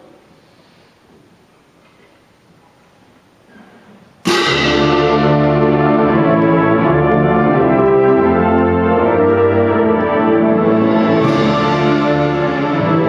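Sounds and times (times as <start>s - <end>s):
wind band playing: 4.3s - 13.0s.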